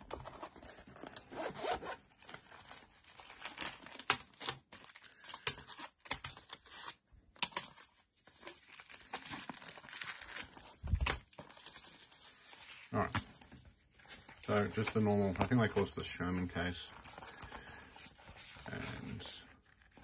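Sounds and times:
zipper being pulled open: 0:01.1 - 0:02.2
plastic packaging crinkling: 0:08.3 - 0:12.8.

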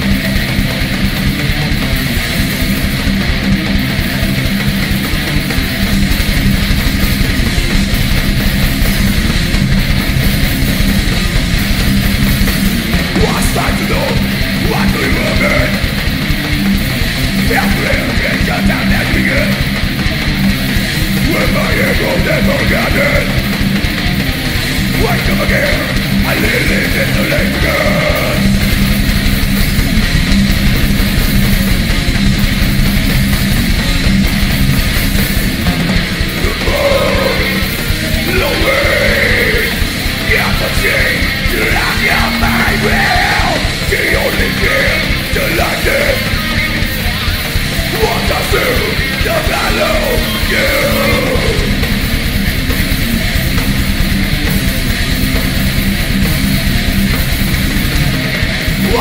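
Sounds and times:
electric guitars: 0:00.0 - 0:59.0
fast dense drumming: 0:00.0 - 0:59.0.

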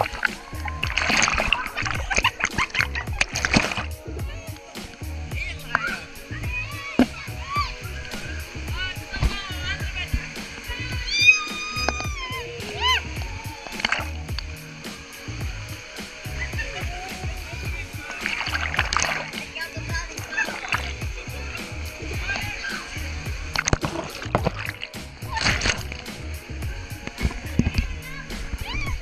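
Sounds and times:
music with a steady beat: 0:00.0 - 0:29.0
water splashing and rushing: 0:00.0 - 0:29.0.

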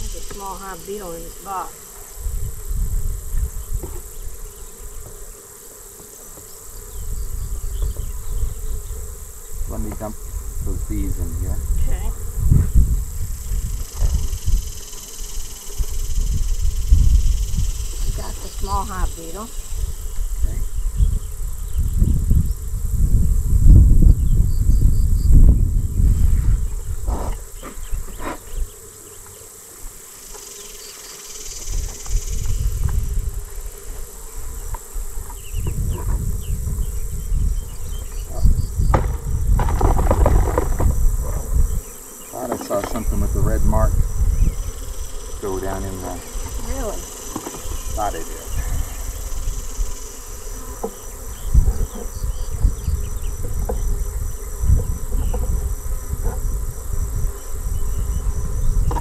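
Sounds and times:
bees buzzing: 0:00.0 - 0:59.0
knocks from wooden box: 0:38.9 - 0:41.0.

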